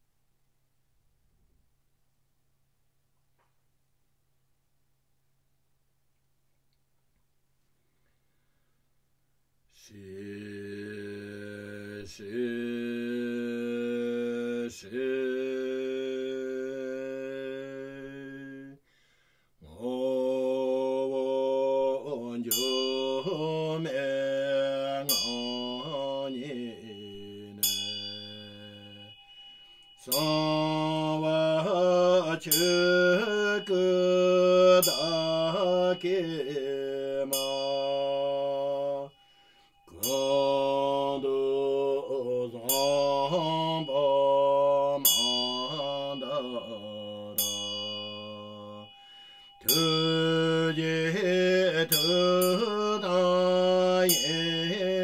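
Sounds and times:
man chanting in long notes: 0:09.8 - 0:18.8, 0:19.6 - 0:29.1, 0:30.0 - 0:39.2, 0:39.9 - 0:48.9
small hand bell ringing: 0:22.5 - 0:55.0.

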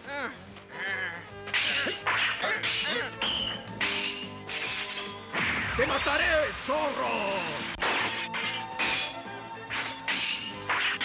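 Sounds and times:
background music: 0:00.0 - 0:11.0
swords clashing: 0:01.5 - 0:06.2, 0:07.4 - 0:11.0.

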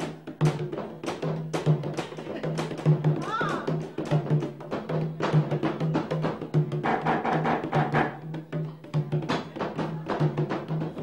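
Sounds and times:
hand drums: 0:00.0 - 0:11.0.

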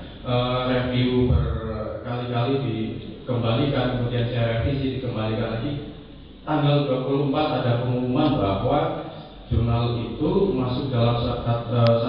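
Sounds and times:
man speaking over loudspeakers: 0:00.0 - 0:12.0.

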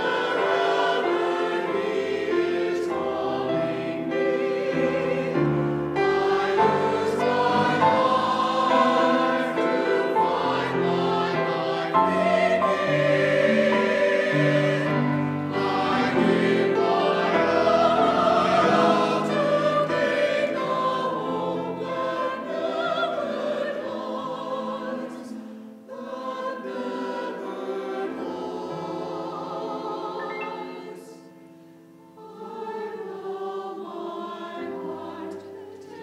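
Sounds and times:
choir singing in harmony: 0:00.0 - 0:36.0
grand piano: 0:00.0 - 0:36.0.

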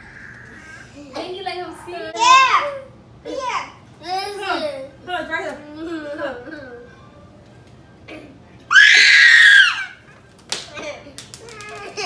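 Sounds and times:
loud high-pitched scream: 0:08.7 - 0:10.0.

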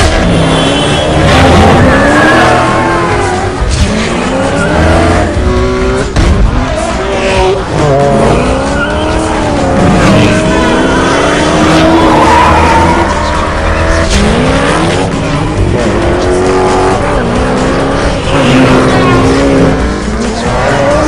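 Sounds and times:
sports car engines revving: 0:00.0 - 0:21.0
tyre squeal: 0:08.4 - 0:13.9.

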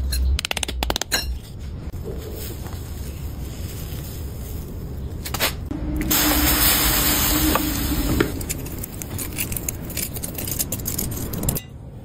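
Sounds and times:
loud hiss: 0:06.0 - 0:08.5.

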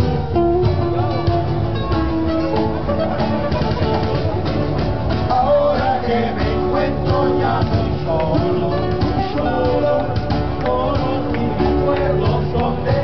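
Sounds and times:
acoustic guitars strumming: 0:00.0 - 0:13.0
men singing together: 0:05.2 - 0:13.0.

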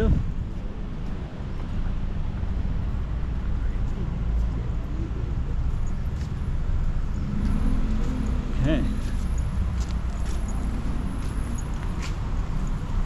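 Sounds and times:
low city rumble: 0:00.0 - 0:13.0.

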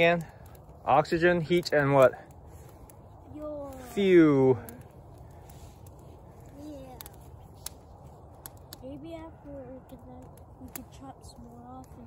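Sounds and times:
branches crackling in fire: 0:00.0 - 0:12.0
sharp pops of fire: 0:00.0 - 0:12.0.

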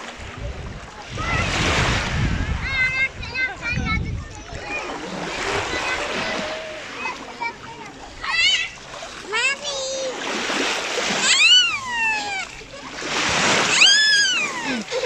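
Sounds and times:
water splashing: 0:00.0 - 0:15.0
children squealing and calling: 0:01.0 - 0:15.0.

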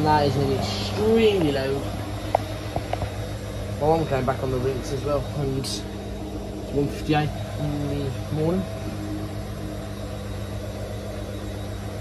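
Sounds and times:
washing machine motor hum: 0:00.0 - 0:12.0.

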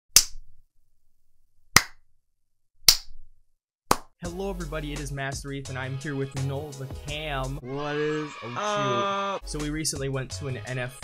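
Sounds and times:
sharp hand smacks: 0:00.2 - 0:00.4, 0:01.8 - 0:02.0, 0:03.9 - 0:04.1.

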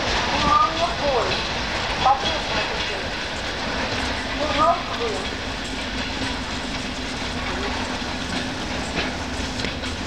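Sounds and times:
electric train rumbling: 0:00.0 - 0:10.0
train wheel clicks: 0:00.0 - 0:10.0.

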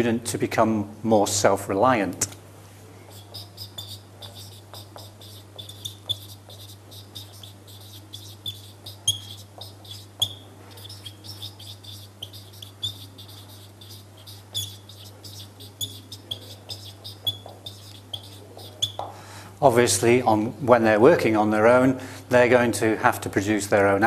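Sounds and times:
steady low hum: 0:00.0 - 0:20.7
marker squeaking on whiteboard: 0:03.1 - 0:19.1.

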